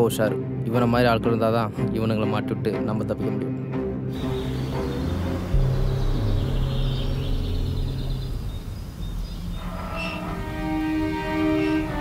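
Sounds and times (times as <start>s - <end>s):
music with held notes: 0.0s - 12.0s
vehicle driving by: 4.1s - 11.6s.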